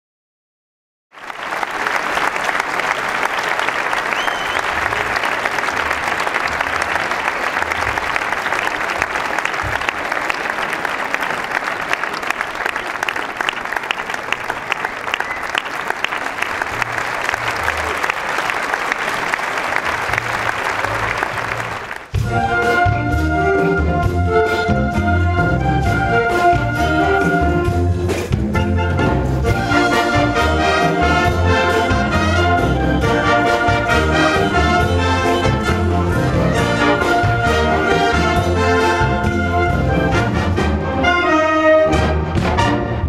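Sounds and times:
audience applauding: 1.1 - 22.2.

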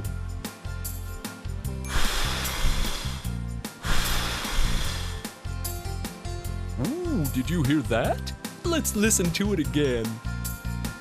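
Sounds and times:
soft background music: 0.0 - 11.0
puffs of breath blowing candles: 1.8 - 5.4.

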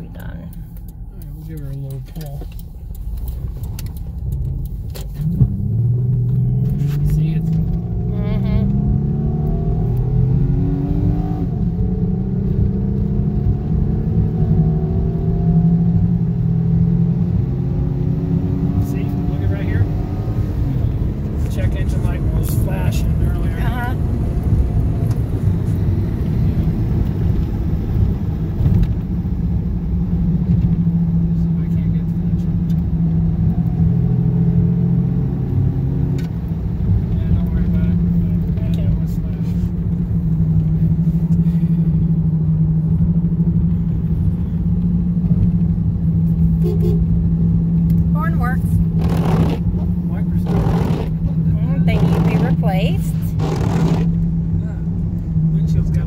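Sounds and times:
car interior road drone: 0.0 - 56.0.

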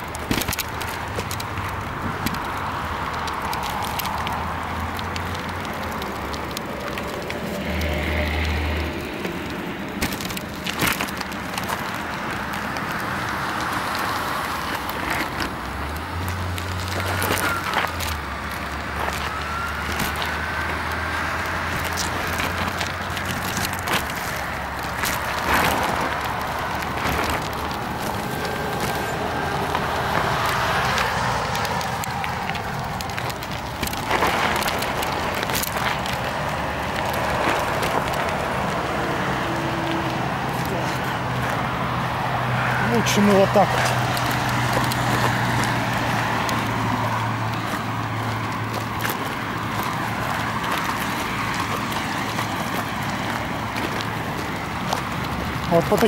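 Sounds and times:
bicycle rattling and knocking: 0.0 - 56.0
car traffic passing: 0.0 - 56.0
wind and tyre noise: 0.0 - 56.0.

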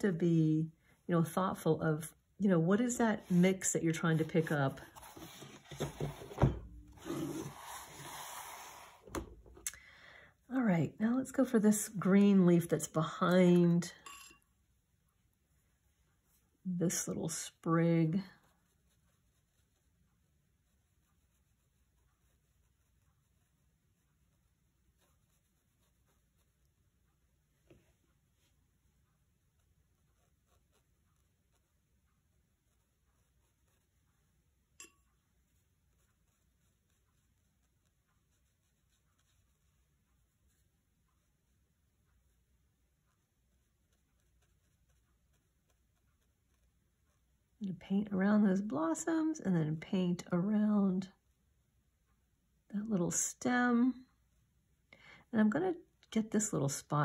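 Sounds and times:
brush scrubbing: 2.7 - 6.2, 6.9 - 9.1, 35.2 - 47.3
brush knocking on palette: 4.2 - 7.4
paintbrush clinking on palette: 14.0 - 14.5.

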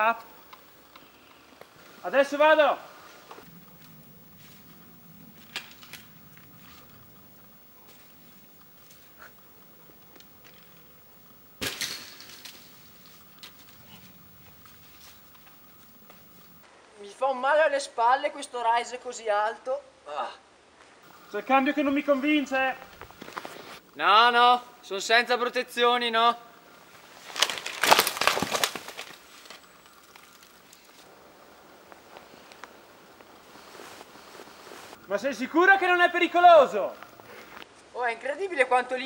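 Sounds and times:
bike crunching on wooden poles: 3.2 - 16.6, 21.5 - 23.8, 27.2 - 31.0
metallic rattle and ring: 11.6 - 13.8
bike crashing onto ground: 11.6 - 15.6, 27.3 - 30.6.

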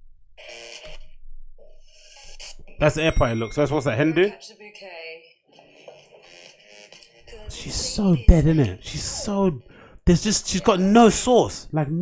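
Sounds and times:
video playback audio: 0.4 - 12.0
host speaking: 7.3 - 12.0.

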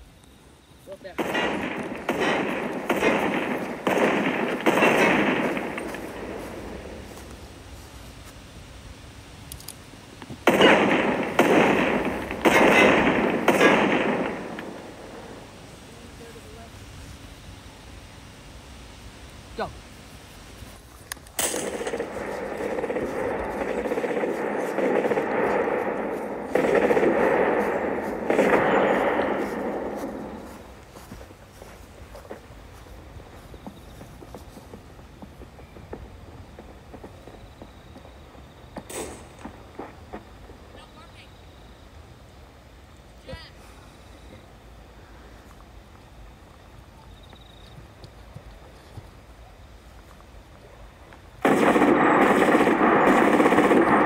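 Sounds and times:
machine-gun fire: 1.1 - 7.1, 10.4 - 15.5, 21.4 - 30.7, 51.4 - 54.0
faint sharp cracks: 21.0 - 31.1.

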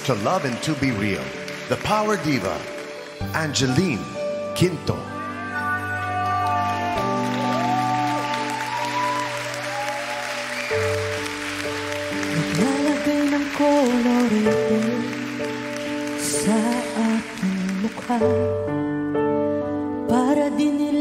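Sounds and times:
keyboard chords: 0.0 - 21.0
woman singing: 12.3 - 15.5, 16.1 - 18.8, 20.0 - 21.0.

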